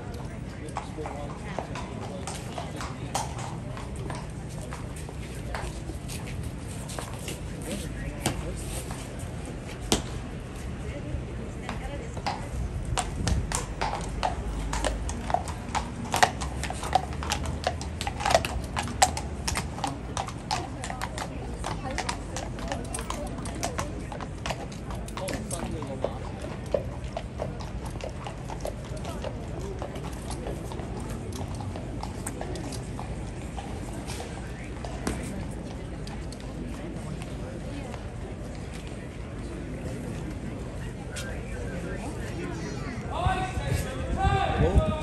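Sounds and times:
horse hooves on cobblestones: 0.0s - 45.0s.

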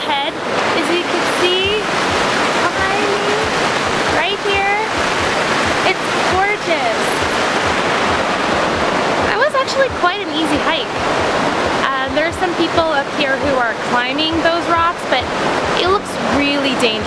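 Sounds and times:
woman talking: 0.0s - 1.9s, 2.6s - 3.5s, 4.1s - 4.9s, 5.8s - 7.4s, 9.3s - 10.9s, 11.8s - 17.0s
water rushing over rocks: 0.0s - 17.0s.

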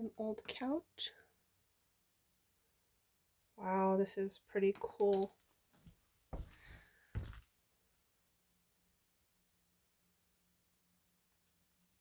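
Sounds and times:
footsteps on wooden floorboards: 5.7s - 7.4s.

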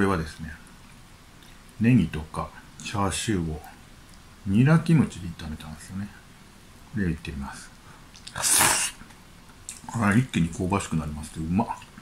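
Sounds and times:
man slurping noodles: 8.3s - 9.0s.

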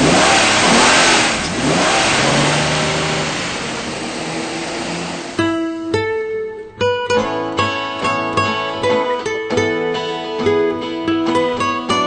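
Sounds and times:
acoustic guitar plucking notes: 4.7s - 12.0s.

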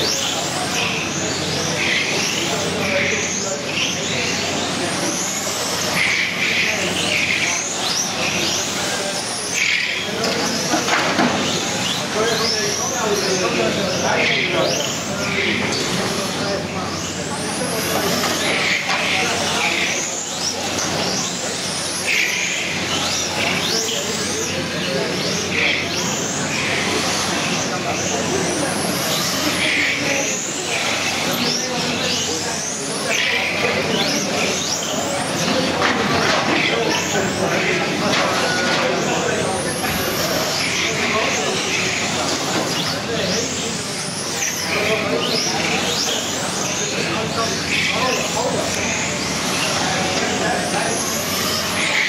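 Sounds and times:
electric toy car motors whining: 0.0s - 52.0s.

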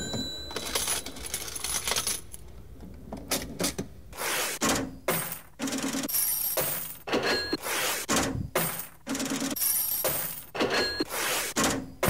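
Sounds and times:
coins clinking: 0.0s - 2.5s, 5.1s - 7.6s, 8.6s - 11.1s.

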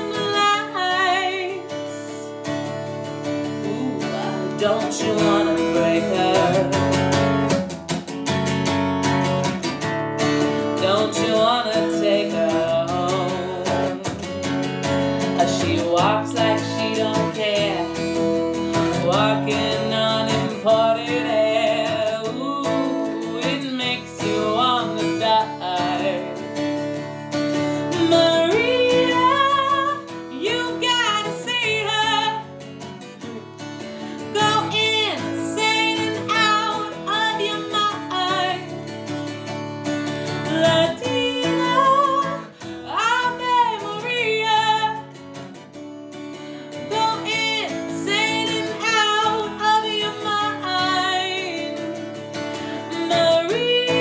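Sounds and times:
woman singing: 0.0s - 7.6s, 10.2s - 54.0s
strummed acoustic guitar: 0.0s - 54.0s.

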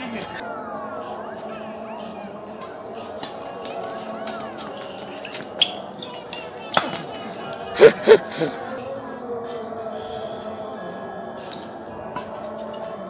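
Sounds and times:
background chatter: 0.0s - 13.0s
rackets hitting shuttlecock: 3.2s - 7.3s
person laughing loudly: 7.0s - 8.9s.

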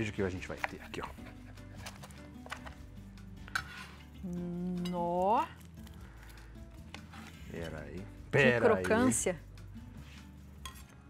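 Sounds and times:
quiet background music: 0.0s - 11.0s
person humming: 4.2s - 5.0s.

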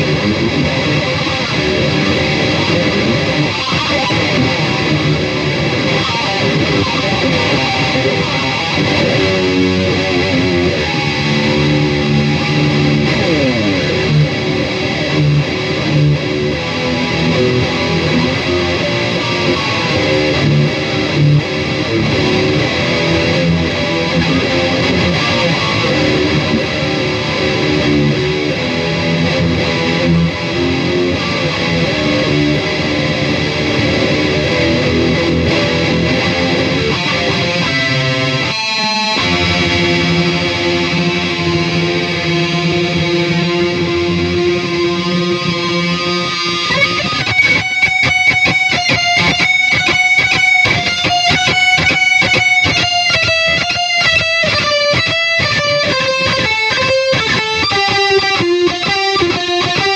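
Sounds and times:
distorted electric guitar shredding: 0.0s - 59.9s.

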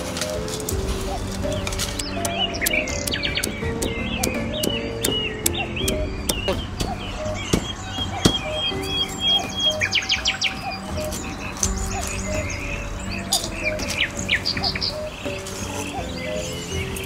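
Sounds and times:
birds chirping and trilling: 0.0s - 17.0s
soft background music: 0.0s - 17.0s.

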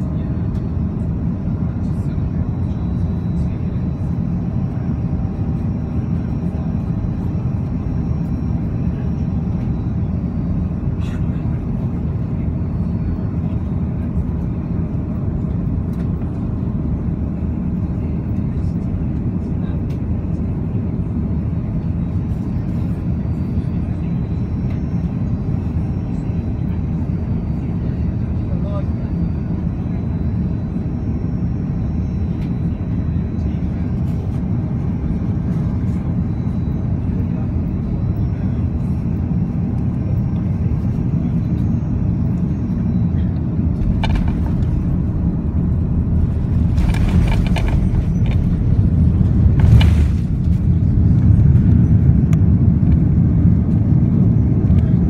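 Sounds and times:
jet engine and airflow rumble: 0.0s - 55.0s.

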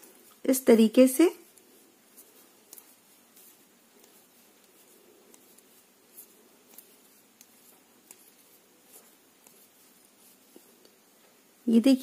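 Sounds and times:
yarn rubbing: 0.0s - 12.0s
knitting needles clicking: 1.4s - 11.0s.

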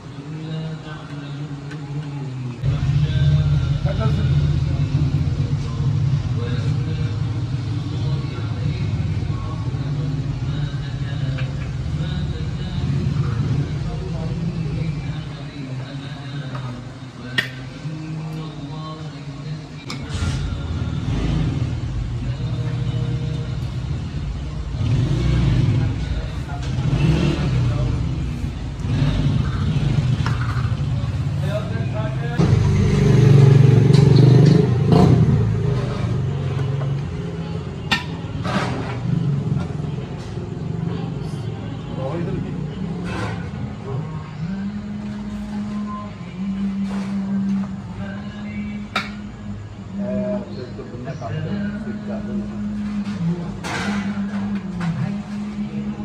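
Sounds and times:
people talking: 0.0s - 21.4s, 22.0s - 56.0s
motor traffic: 0.0s - 56.0s.

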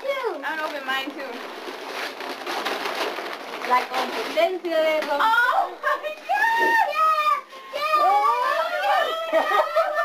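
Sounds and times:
excited voices: 5.2s - 10.0s
high-pitched laughter: 8.9s - 10.0s.

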